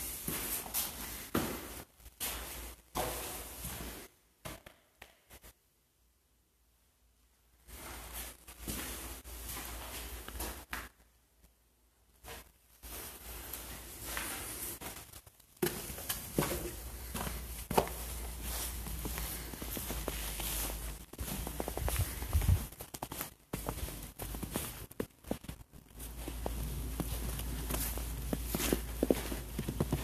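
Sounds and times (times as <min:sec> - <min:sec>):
footsteps in snow: 0:12.8 - 0:30.0.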